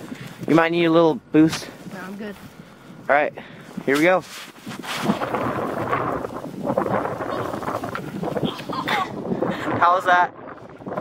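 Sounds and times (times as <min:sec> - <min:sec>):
sled scraping over snow and grass: 0:03.6 - 0:09.7.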